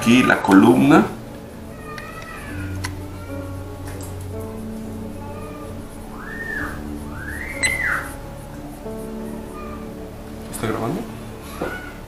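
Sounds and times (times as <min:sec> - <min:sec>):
rising and falling whistle tones: 0:01.6 - 0:10.0.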